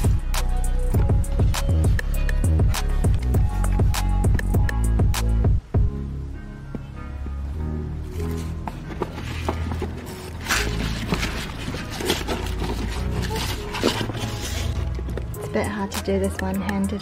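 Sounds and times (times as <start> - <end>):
background music with bass line: 0.0 - 17.0
paper packaging rustling: 8.1 - 15.3.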